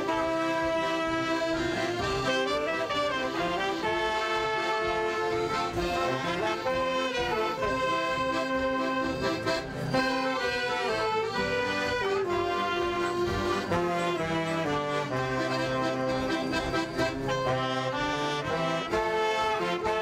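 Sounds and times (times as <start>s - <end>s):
accordion playing chords and melody: 0.0s - 20.0s.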